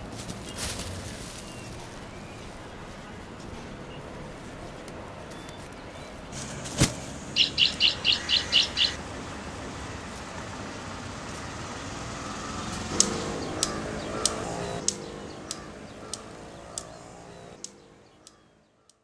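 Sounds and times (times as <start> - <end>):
street background noise: 0.0 - 19.0
bird chirping: 5.2 - 9.0, 11.7 - 19.0
regular ticking: 6.4 - 19.0
sharp click: 13.0 - 16.9.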